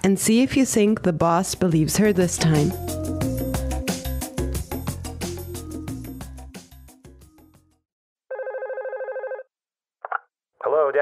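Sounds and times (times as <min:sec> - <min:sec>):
background music: 0:00.0 - 0:07.8
telephone ringing trill: 0:08.3 - 0:09.5.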